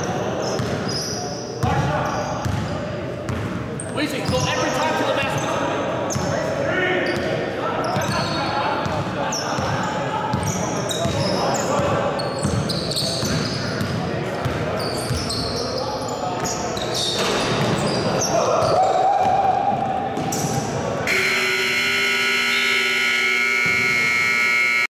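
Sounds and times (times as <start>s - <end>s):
sneakers squeaking: 0.2s - 6.4s, 7.0s - 21.4s
players calling out: 21.0s - 24.9s
scoreboard horn: 21.1s - 24.9s.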